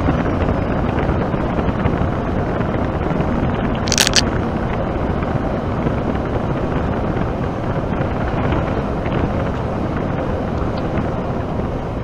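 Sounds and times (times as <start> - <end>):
lorry road and engine noise: 0.0 - 12.0
sharp clicking rattle: 3.9 - 4.3.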